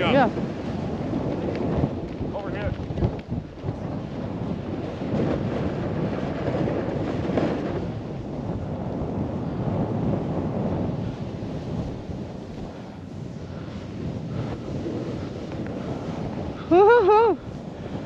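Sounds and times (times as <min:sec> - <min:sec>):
wind rushing over microphone: 0:00.0 - 0:18.0.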